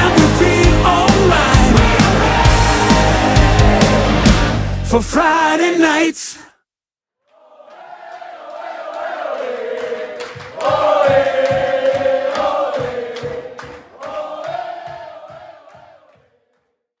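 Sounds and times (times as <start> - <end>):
crowd chanting in unison: 0.0 - 4.5, 7.3 - 16.6.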